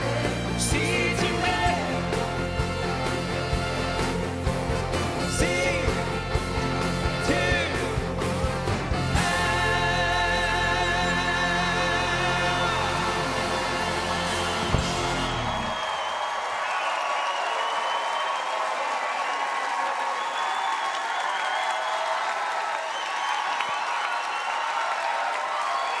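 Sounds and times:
live pop-rock band: 0.0s - 15.8s
audience applauding and cheering: 0.0s - 26.0s.

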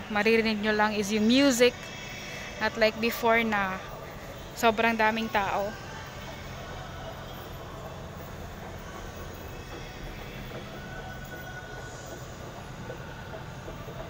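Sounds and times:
escalator rumble and hum: 0.0s - 14.0s.

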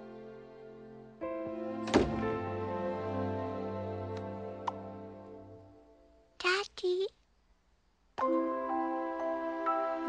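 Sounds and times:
background music: 0.0s - 6.4s, 8.2s - 10.0s
door shutting thunk: 1.8s - 2.4s.

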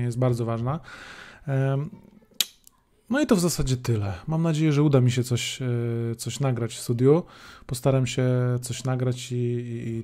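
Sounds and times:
man breathing: 0.8s - 1.5s, 7.3s - 7.7s.

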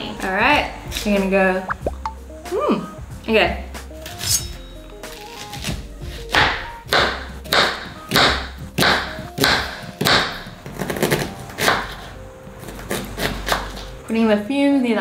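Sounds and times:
background music: 0.0s - 15.0s
knife chopping on plastic board: 5.6s - 12.1s.

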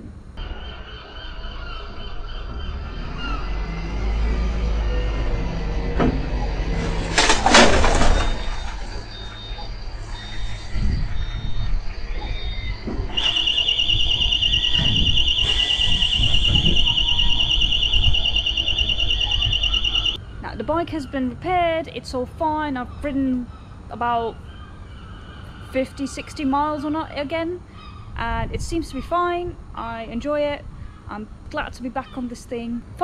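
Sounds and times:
diesel engine rumbling: 0.0s - 22.8s
loud squeal: 0.4s - 20.2s
continuous high-pitched alarm tone: 7.2s - 20.3s
short high reversing beeps: 8.2s - 20.2s.

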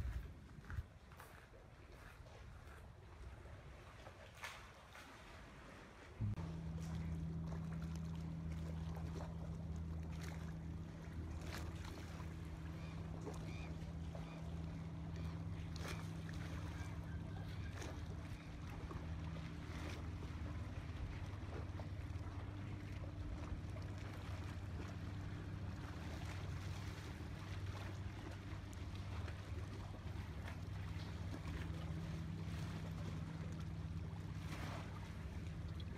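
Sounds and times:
wind noise: 0.0s - 0.9s
motorboat engine humming: 0.0s - 4.2s, 5.4s - 35.9s
water noise: 0.0s - 35.9s.

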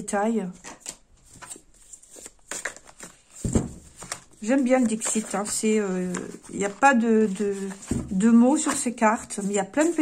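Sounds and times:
cards being shuffled: 0.7s - 10.0s.

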